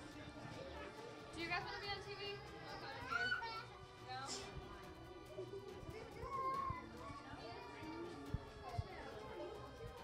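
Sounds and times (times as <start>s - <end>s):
background music: 0.0s - 10.0s
children chattering: 4.7s - 10.0s.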